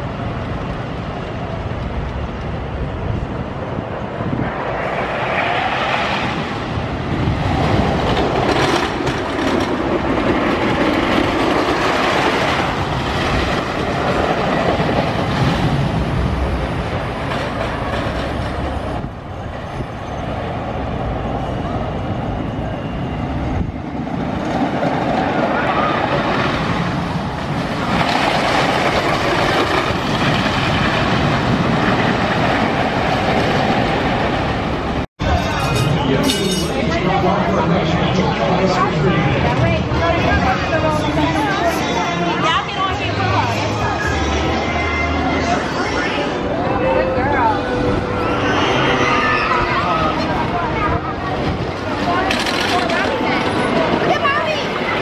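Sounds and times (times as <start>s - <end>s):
roller coaster wheels clattering: 1.1s - 20.6s, 23.5s - 44.2s, 47.4s - 55.0s.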